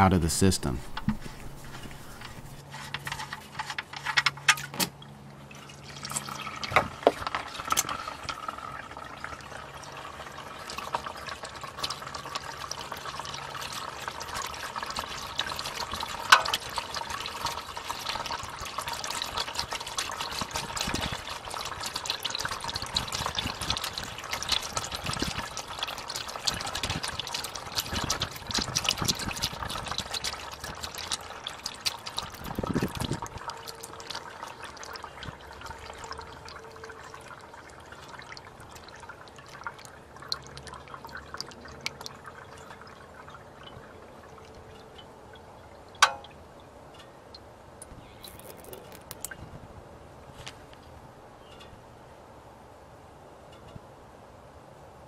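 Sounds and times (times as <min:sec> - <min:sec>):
oil pouring into a drain pan: 0:00.9 - 0:46.4, 0:48.2 - 0:49.4.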